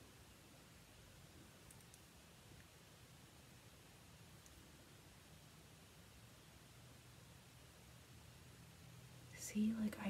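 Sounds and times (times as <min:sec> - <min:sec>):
faint low hum: 0:00.0 - 0:10.0
woman speaking softly: 0:09.3 - 0:10.0.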